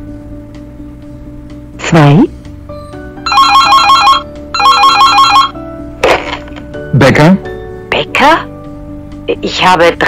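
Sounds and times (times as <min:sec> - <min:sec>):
soft background music: 0:00.0 - 0:10.0
electronic telephone ringing: 0:03.2 - 0:05.6.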